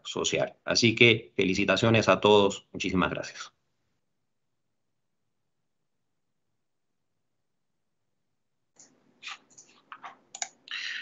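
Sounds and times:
keyboard and mouse clicks: 8.8s - 10.6s.

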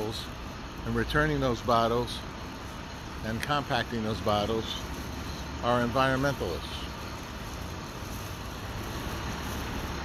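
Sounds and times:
even hiss: 0.0s - 10.0s
low traffic hum: 0.0s - 10.0s.

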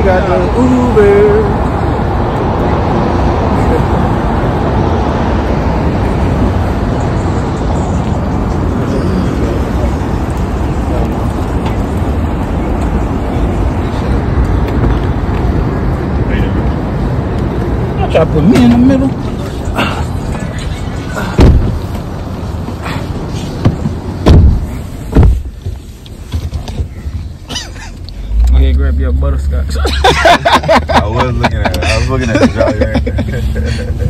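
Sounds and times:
wind rumbling on microphone: 0.0s - 18.0s
passing traffic: 0.0s - 34.0s.

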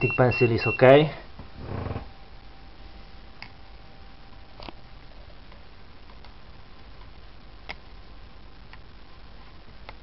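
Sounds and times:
low room noise: 0.0s - 10.0s.

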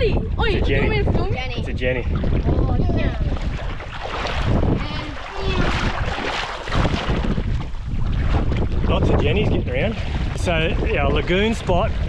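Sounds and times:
shallow water washing: 0.0s - 12.0s
wind buffeting microphone: 0.0s - 12.0s.

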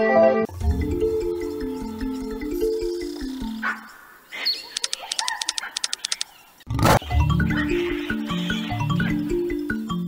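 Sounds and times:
rapid clicks of reels: 4.8s - 6.3s.

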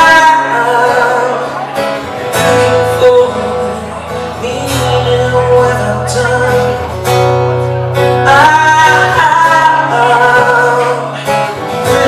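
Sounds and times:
acoustic guitar strumming: 0.0s - 12.0s
man singing: 0.0s - 12.0s.

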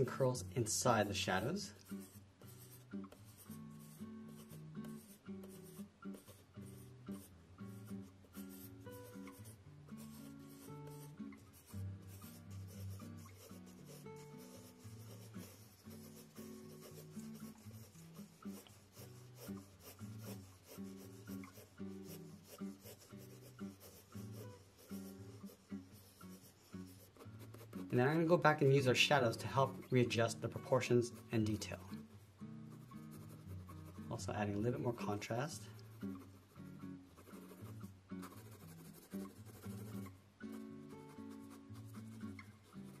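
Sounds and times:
soft background music: 0.0s - 43.0s
pencil scratching on paper: 1.0s - 32.0s, 32.7s - 43.0s.

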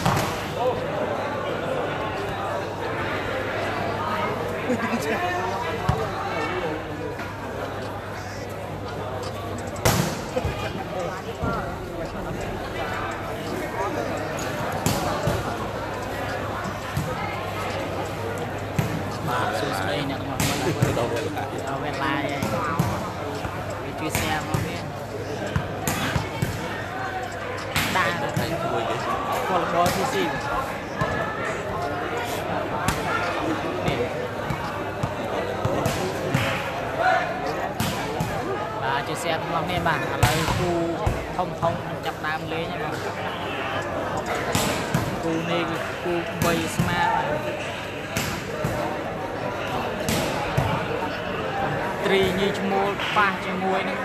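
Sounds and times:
crowd chatter and shouts: 0.0s - 54.0s.

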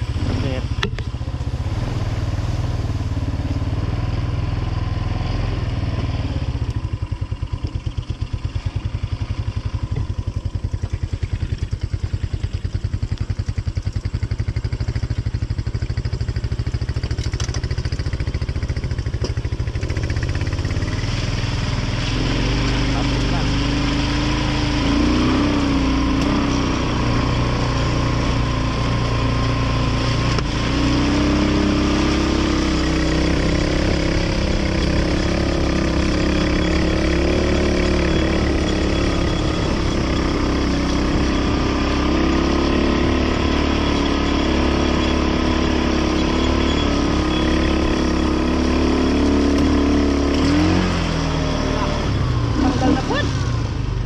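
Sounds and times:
atv engine running: 0.0s - 54.0s.

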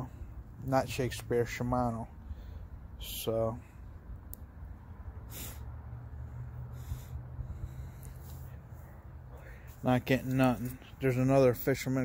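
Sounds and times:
person breathing close to microphone: 2.2s - 3.0s, 5.2s - 9.8s.

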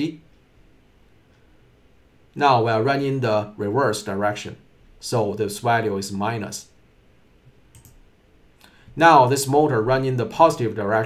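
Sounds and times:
faint computer mouse clicks: 7.7s - 8.0s.

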